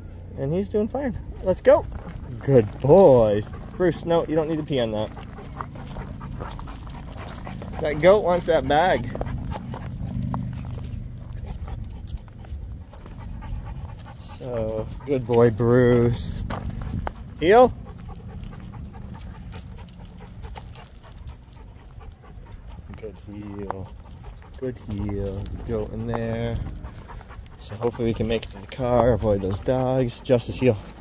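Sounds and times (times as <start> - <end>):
dog panting: 1.1 - 31.0
footsteps on gravel: 1.3 - 31.0.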